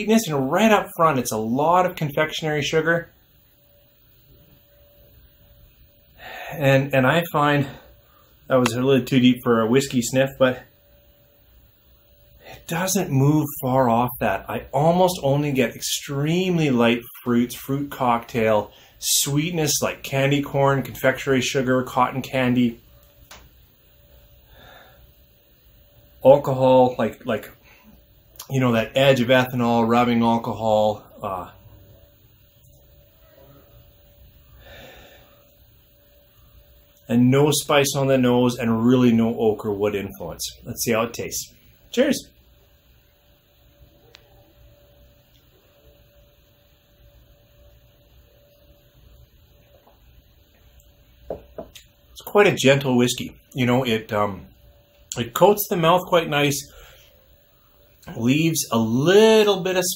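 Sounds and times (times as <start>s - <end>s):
faint steady hum: 0.0s - 59.9s
small click: 23.2s - 23.5s.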